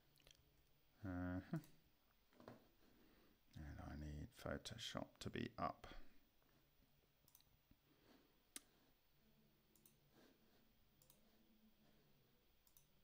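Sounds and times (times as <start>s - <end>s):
faint computer mouse clicks: 9.7s - 10.0s, 11.0s - 11.2s, 12.6s - 12.9s.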